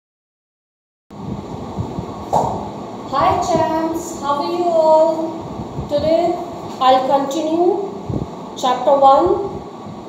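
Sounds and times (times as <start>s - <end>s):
low room rumble: 1.1s - 10.0s.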